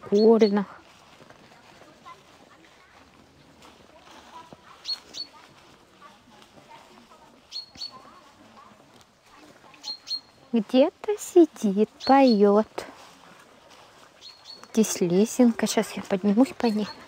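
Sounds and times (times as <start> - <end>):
songbird chirping: 0.0 - 17.0.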